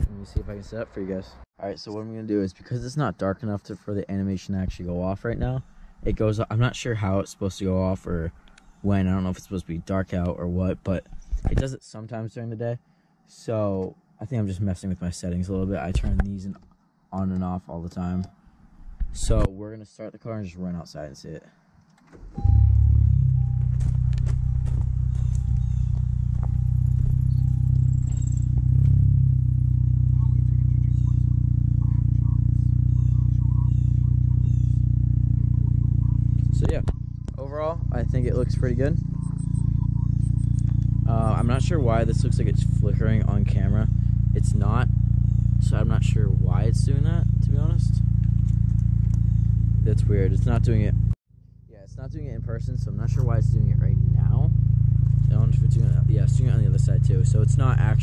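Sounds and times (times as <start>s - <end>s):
car engine starting and idling: 22.0s - 51.2s, 52.0s - 58.0s.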